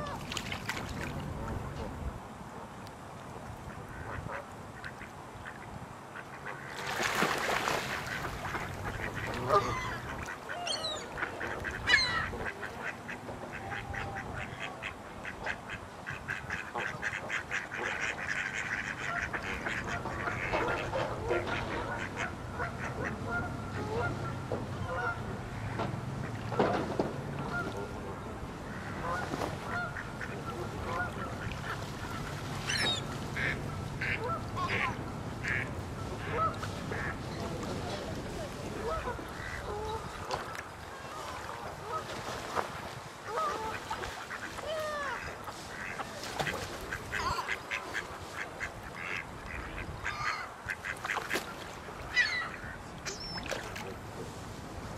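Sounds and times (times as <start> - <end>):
ducks quacking: 3.9 - 26.8, 28.6 - 38.0, 38.7 - 53.7
geese honking: 8.0 - 14.7, 28.7 - 37.2.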